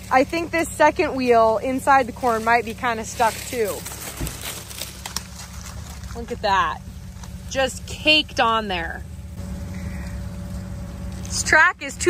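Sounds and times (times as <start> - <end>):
dry leaves rustling and crackling: 0.0 - 7.8, 9.4 - 12.0
steady low rumble: 0.0 - 12.0.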